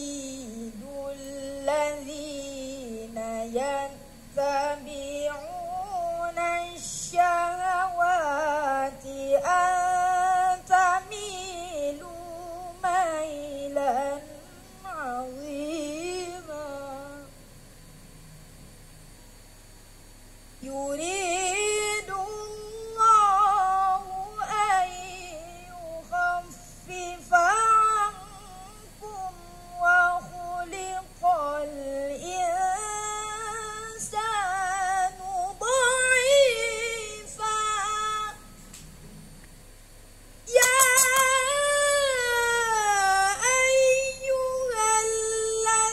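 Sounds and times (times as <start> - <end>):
boy reciting melodically: 0.0 - 17.3, 20.6 - 38.4, 40.5 - 45.9
boy's melodic recitation: 40.5 - 45.9.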